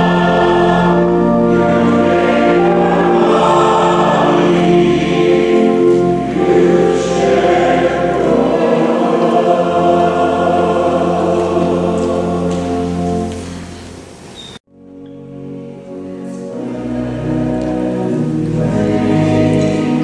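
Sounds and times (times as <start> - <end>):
choir singing a hymn: 0.0 - 13.7, 15.2 - 20.0.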